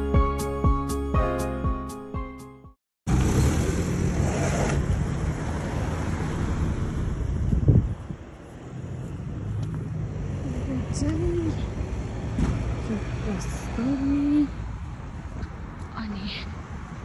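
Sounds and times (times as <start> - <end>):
wind rumbling on microphone: 3.1 - 12.1
car passing: 3.1 - 17.0
road traffic: 3.1 - 17.0.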